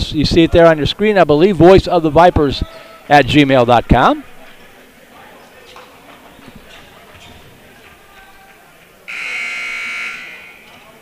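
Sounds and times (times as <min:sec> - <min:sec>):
gymnasium chatter: 0:00.0 - 0:11.0
scoreboard horn buzzing: 0:09.1 - 0:10.9.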